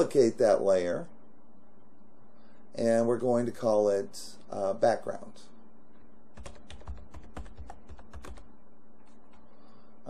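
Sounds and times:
computer keyboard typing: 6.3s - 9.4s.

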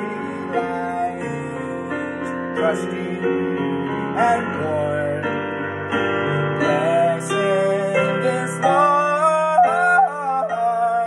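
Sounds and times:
held piano chord: 0.0s - 11.0s
man singing wordless melody: 0.0s - 11.0s.

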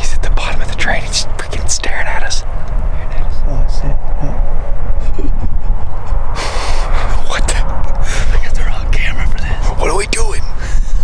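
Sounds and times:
man talking: 0.0s - 4.4s, 6.9s - 10.6s
wind buffeting microphone: 0.0s - 11.0s.

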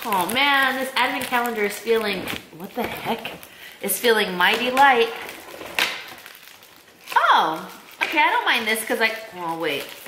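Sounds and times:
cardboard box crackling: 0.0s - 8.2s.

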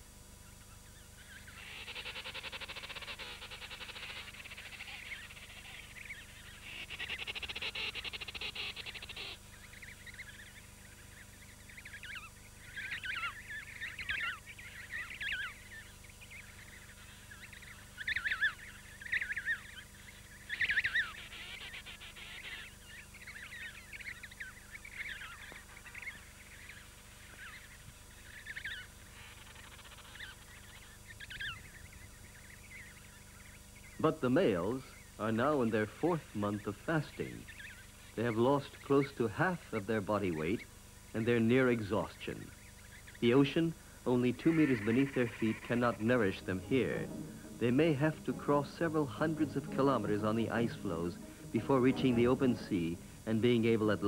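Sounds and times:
penguin chick peeping: 0.7s - 34.0s, 36.4s - 54.0s
high hiss: 34.0s - 54.0s.

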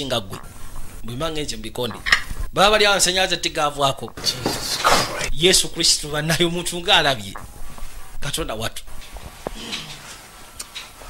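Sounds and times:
people talking: 0.0s - 0.4s, 1.0s - 7.4s, 8.2s - 8.8s.

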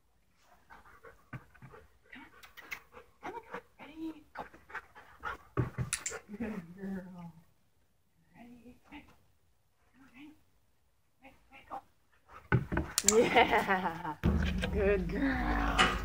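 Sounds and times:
dog panting: 0.4s - 6.3s.

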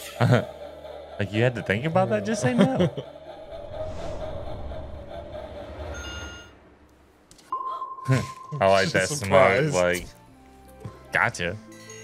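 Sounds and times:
low background rumble: 3.1s - 7.3s
chime-like tone: 5.9s - 6.6s
high-pitched electronic beep: 5.9s - 6.6s.

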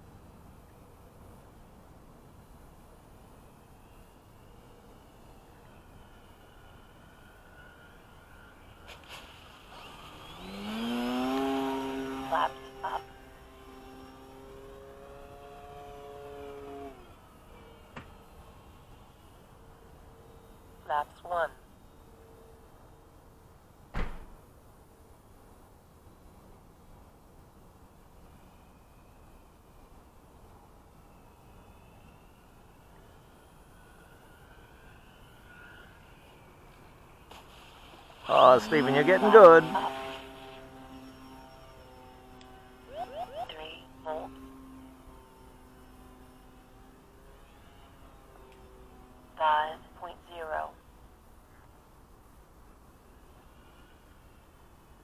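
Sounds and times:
electric motor and propeller whine: 0.0s - 55.0s.

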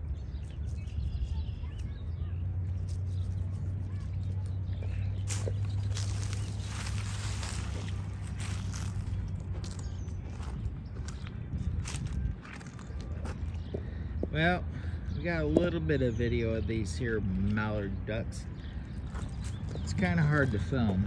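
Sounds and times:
wind rumble on microphone: 0.0s - 14.3s.

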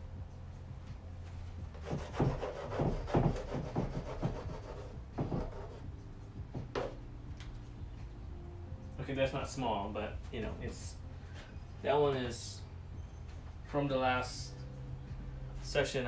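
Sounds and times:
steady low hum: 0.0s - 16.0s
pastel stick rubbing on canvas: 1.8s - 5.9s.

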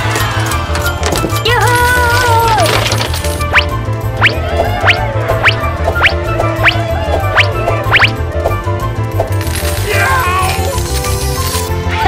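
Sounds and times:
coins clinking and jingling: 0.3s - 3.5s, 9.3s - 11.9s.

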